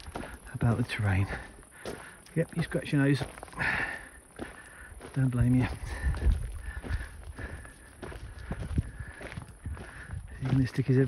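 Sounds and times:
footsteps crunching on gravel: 0.0s - 11.0s.

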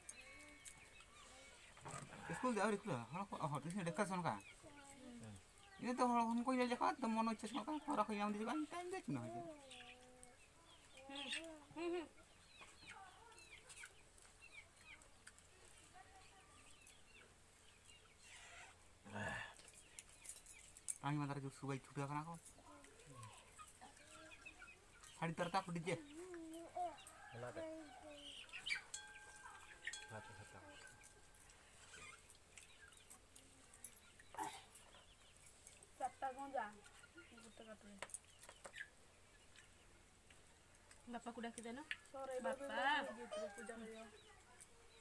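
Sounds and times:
chickens clucking: 0.0s - 16.5s, 22.6s - 40.5s.

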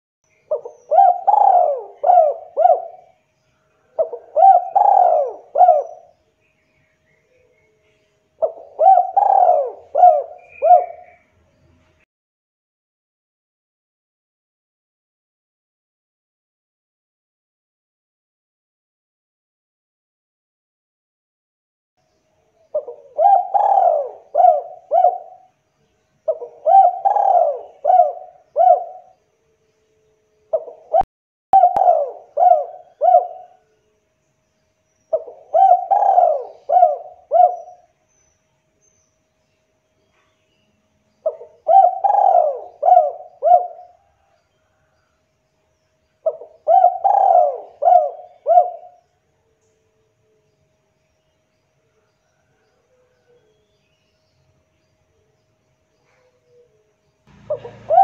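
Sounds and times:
dove cooing: 0.4s - 3.2s, 3.8s - 6.1s, 8.4s - 11.2s, 22.7s - 25.5s, 26.2s - 29.2s, 30.5s - 33.7s, 35.1s - 37.9s, 41.2s - 44.8s, 46.2s - 49.0s, 52.3s - 53.6s, 56.0s - 58.0s.

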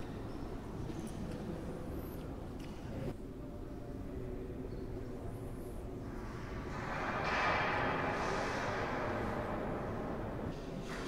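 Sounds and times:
reverberant hall ambience: 0.0s - 11.0s.

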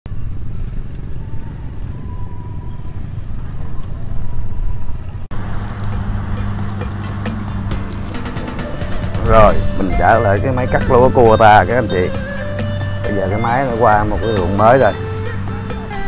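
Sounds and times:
motorbike engines rumbling: 0.1s - 16.0s.

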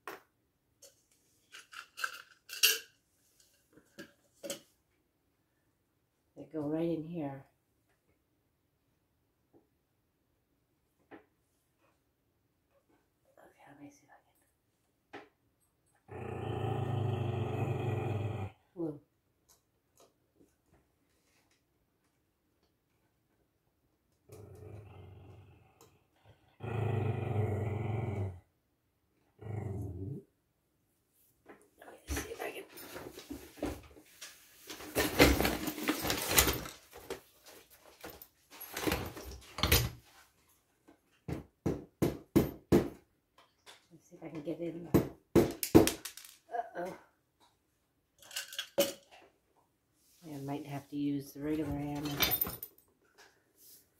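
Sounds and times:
dogs growling: 16.1s - 18.7s, 24.3s - 28.5s, 29.4s - 30.3s.

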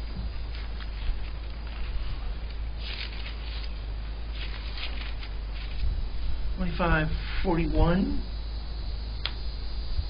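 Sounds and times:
pages being turned: 0.5s - 5.9s
wind on microphone: 5.5s - 7.9s.

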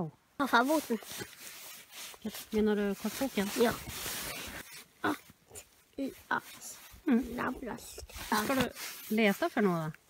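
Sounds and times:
book rustling: 0.5s - 10.0s.

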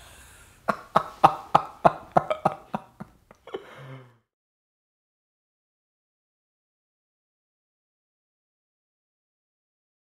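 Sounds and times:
man laughing heartily: 0.6s - 4.2s
man humming: 3.5s - 4.3s.

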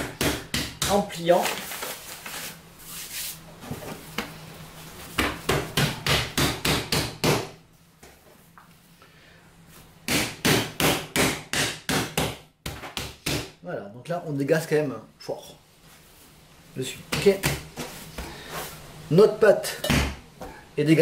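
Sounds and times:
hands slapping dough on table: 0.0s - 1.0s, 5.2s - 7.6s, 10.1s - 13.6s.

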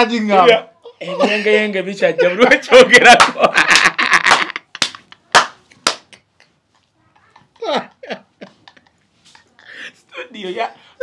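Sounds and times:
men laughing heartily: 2.2s - 5.2s, 7.4s - 10.0s
sharp hand slaps: 4.3s - 6.2s.

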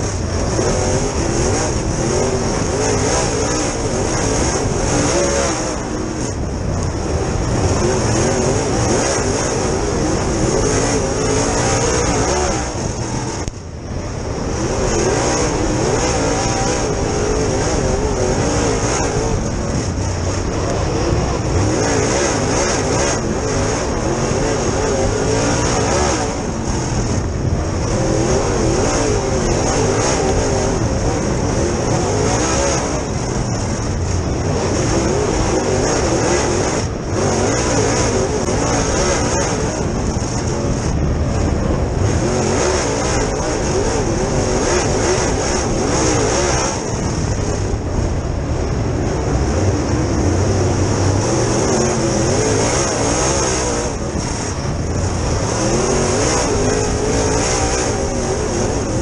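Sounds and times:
race car engine at speed: 0.0s - 59.0s.

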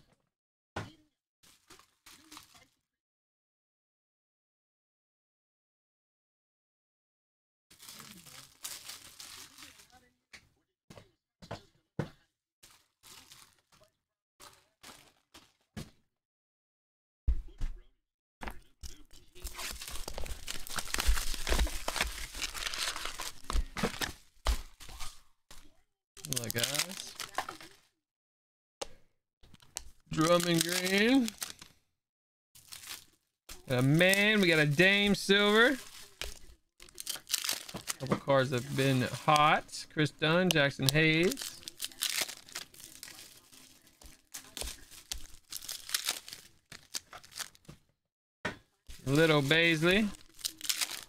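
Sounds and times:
cardboard and wrapper tearing: 1.5s - 2.7s, 7.7s - 10.0s, 12.6s - 13.8s, 19.2s - 25.1s, 26.2s - 27.8s, 29.6s - 31.7s, 32.6s - 47.7s, 48.9s - 51.0s
foil packs crinkling: 1.5s - 2.8s, 7.7s - 10.1s, 12.6s - 15.6s, 19.1s - 25.1s, 26.2s - 27.8s, 29.6s - 31.7s, 32.6s - 47.7s, 48.9s - 51.0s.

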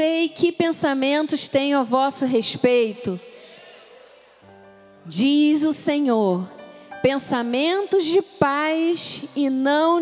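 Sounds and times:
woman speaking: 0.0s - 3.3s, 5.1s - 10.0s.

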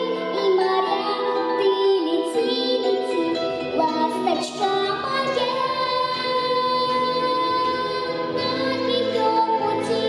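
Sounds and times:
girl singing into microphone: 0.0s - 10.0s
instrumental accompaniment: 0.0s - 10.0s.

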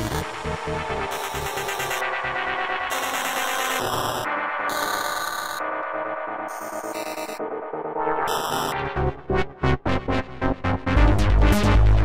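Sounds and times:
electronic music with synthesizers: 0.0s - 12.0s.

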